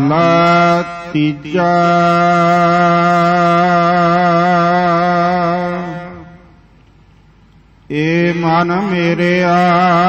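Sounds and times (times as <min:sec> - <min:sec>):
man chanting: 0:00.0 - 0:06.5, 0:07.9 - 0:10.0.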